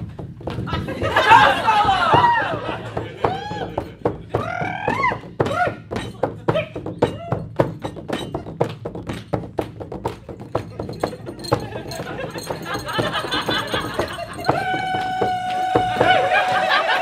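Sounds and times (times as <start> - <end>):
frame drum struck by hand: 0.0 - 16.6.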